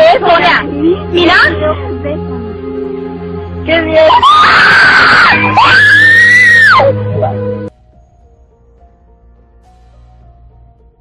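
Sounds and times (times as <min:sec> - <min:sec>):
girls screaming: 0:04.0 - 0:07.0.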